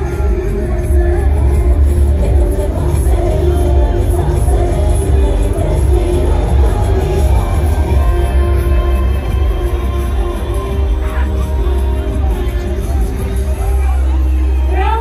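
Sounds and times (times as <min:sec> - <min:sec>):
loud music with heavy bass: 0:00.0 - 0:15.0.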